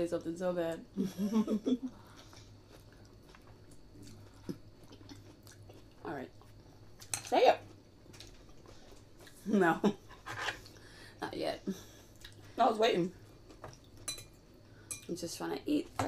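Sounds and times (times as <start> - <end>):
woman laughing: 1.0 - 2.0
chewing and mouth sounds: 2.0 - 9.4.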